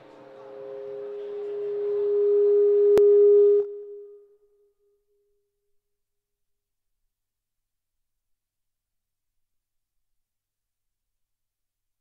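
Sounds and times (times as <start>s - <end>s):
pa feedback tone: 0.0s - 4.5s.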